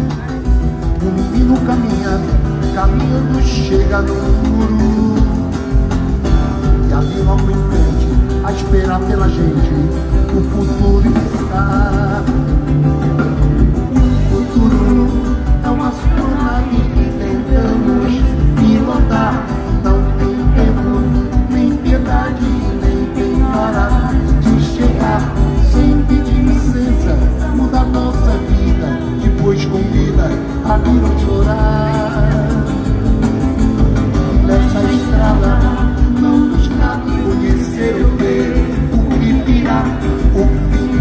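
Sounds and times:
acoustic guitar: 0.0 - 41.0
drum kit: 0.0 - 41.0
person singing: 0.0 - 41.0.

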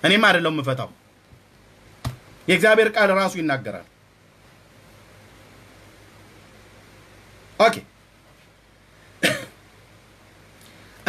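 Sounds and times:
man coughing: 9.2 - 9.6.

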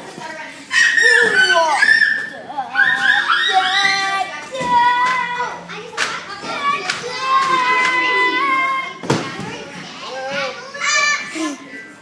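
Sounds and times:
children shouting and calling: 0.4 - 12.0.

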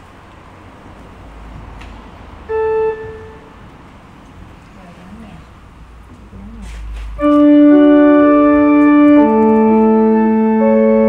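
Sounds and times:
short organ note: 2.5 - 3.6, 7.2 - 11.0.

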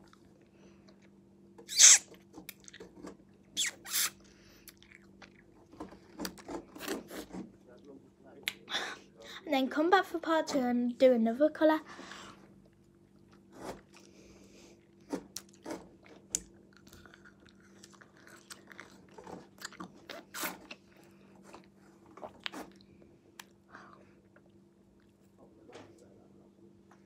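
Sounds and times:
faint steady hum: 0.0 - 27.0
chewing ice lolly crunches: 15.3 - 23.6.

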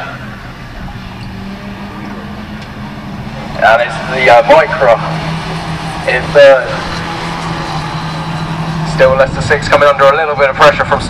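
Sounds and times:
racing car engines droning: 0.0 - 11.0.

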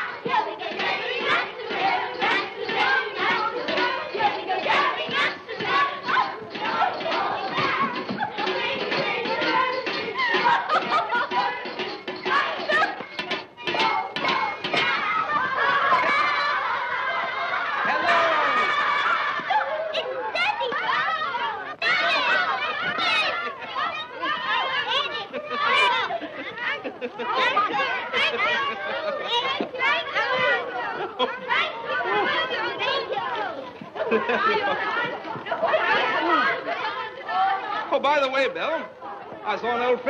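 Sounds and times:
overlapping chatter of voices: 0.0 - 40.0
group of people laughing: 1.1 - 13.2, 15.2 - 37.6.

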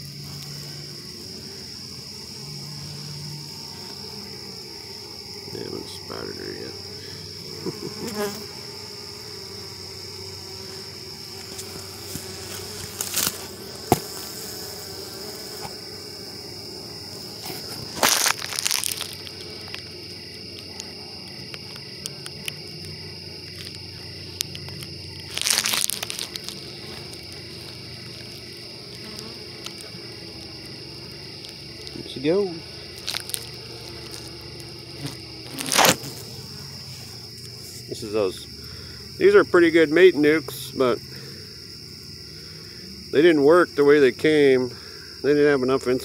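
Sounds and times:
honey bees buzzing: 0.0 - 46.0
rustling noise bursts: 25.3 - 27.8.

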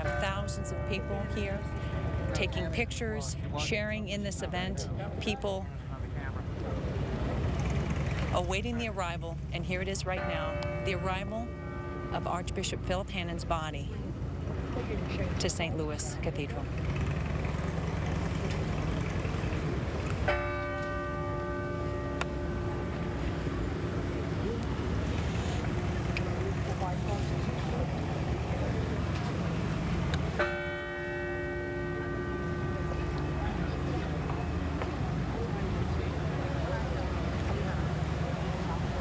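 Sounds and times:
church bell tolling: 0.0 - 2.7, 10.0 - 13.3, 18.8 - 36.4.

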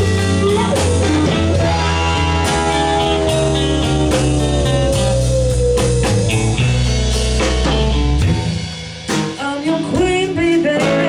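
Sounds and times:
drums: 0.0 - 11.0
electric guitar: 0.0 - 11.0
woman singing lead: 9.4 - 11.0.

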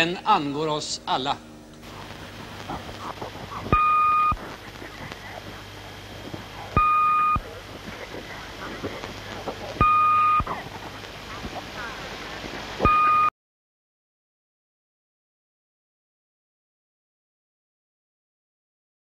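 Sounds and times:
murmur of faint voices: 1.8 - 13.0
electronic beep: 3.7 - 4.4, 6.8 - 7.4, 9.8 - 10.5, 12.8 - 13.3.

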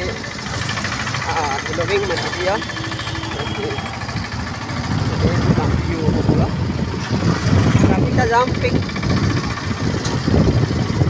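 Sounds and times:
motorcycle engine rumble: 0.0 - 11.0
wind on microphone: 4.1 - 11.0.

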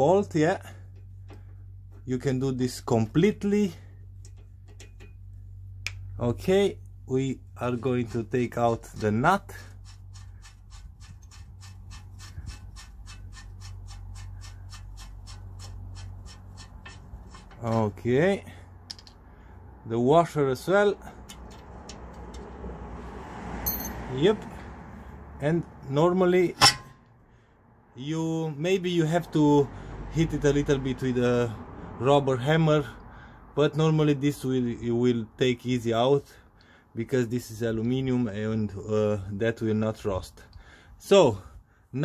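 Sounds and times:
steady low hum: 0.0 - 20.0
low background rumble: 0.0 - 22.8
high metallic ring: 23.6 - 24.0, 26.5 - 27.0.

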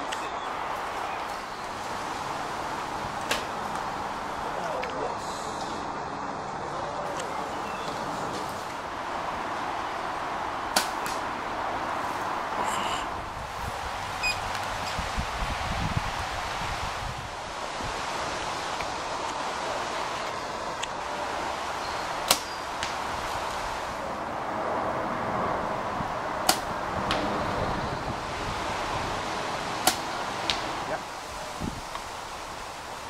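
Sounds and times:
outdoor background hiss: 0.0 - 33.0
arrow thudding into target: 29.8 - 30.6.

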